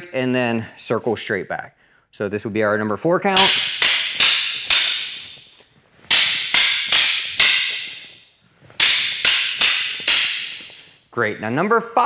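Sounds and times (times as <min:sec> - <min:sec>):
sticks clacking together: 0:03.4 - 0:11.0.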